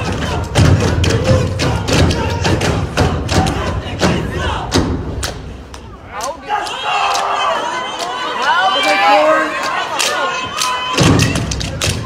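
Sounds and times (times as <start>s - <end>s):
stomping and clapping: 0.0s - 8.6s, 9.5s - 12.0s
crowd voices: 0.0s - 12.0s.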